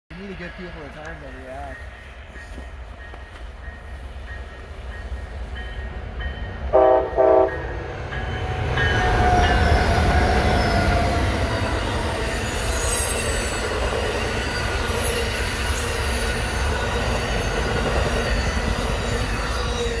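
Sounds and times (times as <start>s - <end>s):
train wheels rumbling on rails: 0.1s - 20.0s
train horn blasts: 6.7s - 7.9s.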